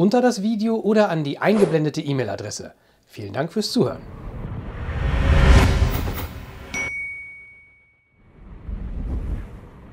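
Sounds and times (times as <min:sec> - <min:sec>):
whoosh: 0:04.0 - 0:06.7
bright ringing ding: 0:06.7 - 0:08.2.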